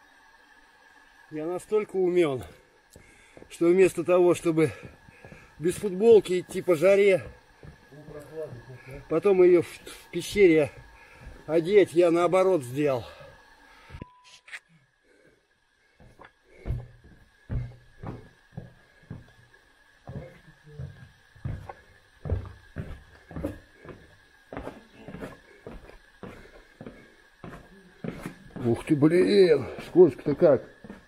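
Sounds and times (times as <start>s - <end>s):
footsteps going down steps: 2.4s - 12.3s, 16.0s - 31.0s.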